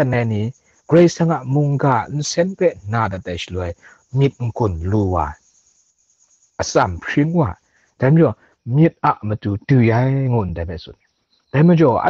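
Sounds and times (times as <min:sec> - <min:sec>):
faint high-pitched tone: 0:00.0 - 0:05.3
man talking: 0:00.0 - 0:05.4, 0:06.6 - 0:10.9, 0:11.6 - 0:12.0.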